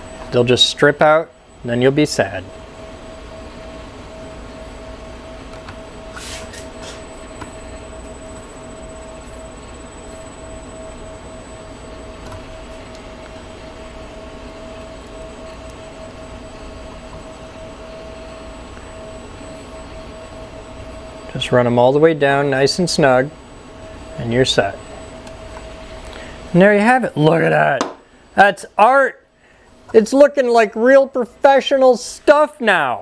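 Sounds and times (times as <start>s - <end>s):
mid-pitched whine: 0.0s - 33.0s
workshop hum: 0.0s - 33.0s.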